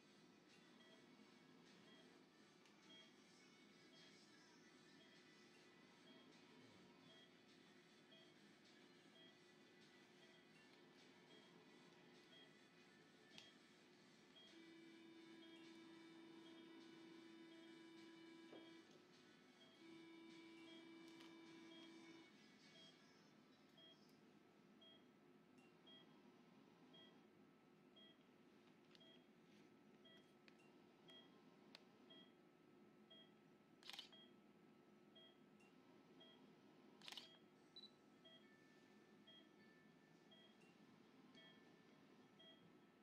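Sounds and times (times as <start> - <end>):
patient monitor beeping: 0.5 - 1.1, 2.8 - 3.2, 7.0 - 8.4, 9.0 - 9.5, 10.1 - 13.7, 14.3 - 18.9, 19.6 - 23.0, 23.8 - 24.1, 24.8 - 26.2, 26.9 - 27.3, 28.0 - 28.2, 28.9 - 29.3, 30.0 - 31.4, 32.0 - 32.4, 33.1 - 34.4, 35.2 - 43.0.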